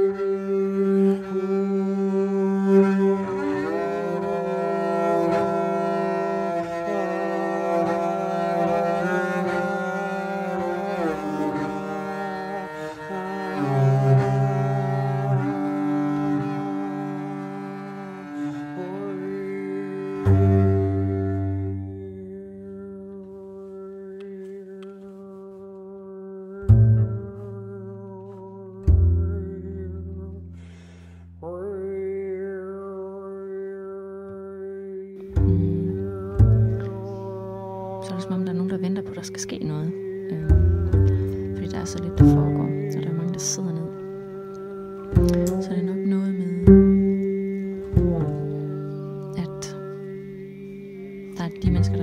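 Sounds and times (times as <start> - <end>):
bowed double bass: 0.0 - 34.6, 35.2 - 52.0
hard-attacked low note: 26.6 - 32.1, 35.3 - 39.2, 40.0 - 52.0.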